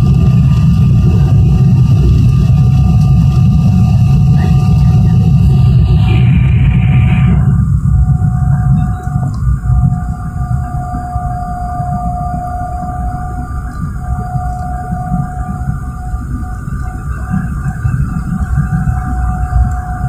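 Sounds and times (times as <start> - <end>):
jet engine and airflow rumble: 0.0 - 20.0
thin high whine: 0.0 - 20.0.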